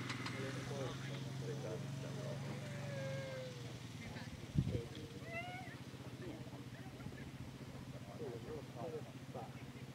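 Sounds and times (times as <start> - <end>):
quad bike engine idling: 0.0 - 9.9.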